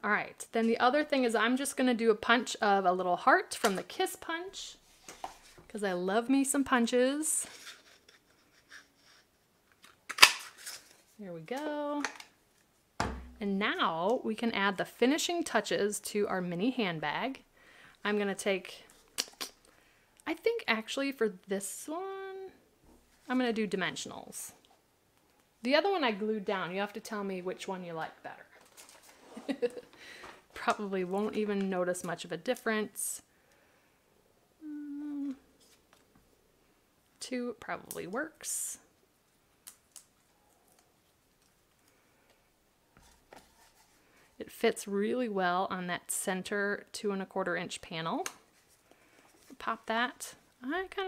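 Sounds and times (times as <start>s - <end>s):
woman humming: 34.6s - 35.5s.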